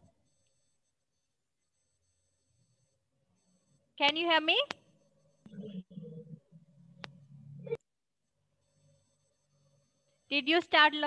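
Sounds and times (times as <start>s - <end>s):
faint high-pitched electronic whine: 0.0s - 11.0s.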